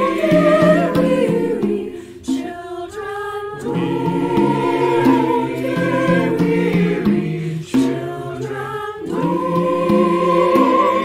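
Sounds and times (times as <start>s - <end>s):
mixed choir singing a carol: 0.0s - 11.0s.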